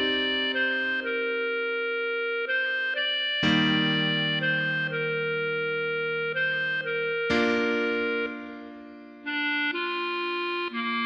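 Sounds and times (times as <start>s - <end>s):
backing track of sustained chords: 0.0s - 10.7s
fuller low chord: 0.0s - 10.8s
clarinet melody: 0.0s - 11.0s.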